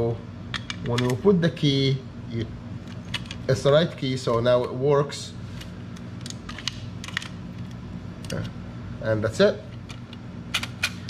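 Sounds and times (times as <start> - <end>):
latch and lock clicks: 9.9 - 11.0.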